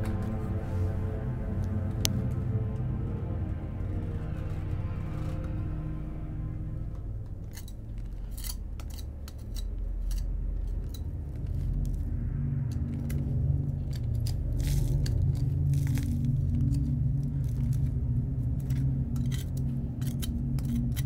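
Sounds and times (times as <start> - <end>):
low hum: 0.0 - 21.0.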